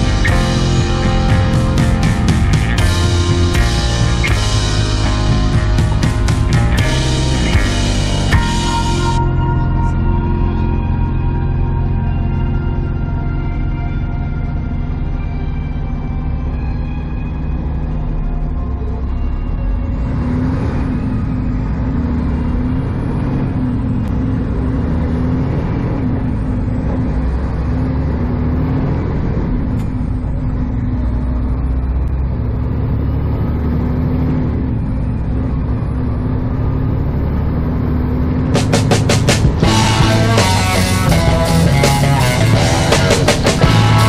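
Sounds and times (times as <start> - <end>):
rock music with drums and guitar: 0.0 - 11.9, 38.6 - 44.0
truck diesel engine droning: 0.0 - 44.0.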